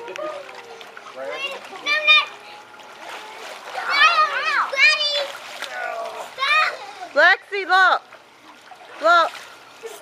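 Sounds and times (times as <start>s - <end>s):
children calling and squealing: 0.0s - 7.2s
water splashing in a pool: 0.0s - 10.0s.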